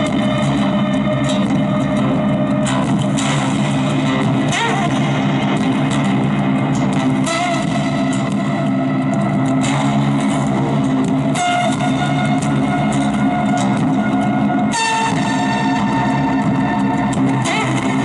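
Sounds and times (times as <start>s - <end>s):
acoustic-electric guitar playing: 0.0s - 18.0s.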